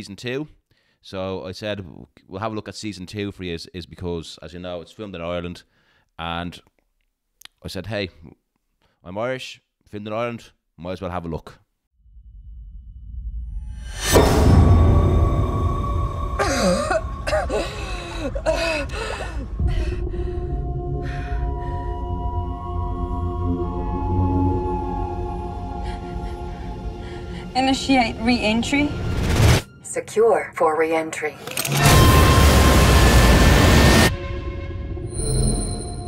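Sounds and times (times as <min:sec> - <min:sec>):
eerie trailer music: 0:12.0 - 0:36.0
woman choking and coughing: 0:16.4 - 0:19.4.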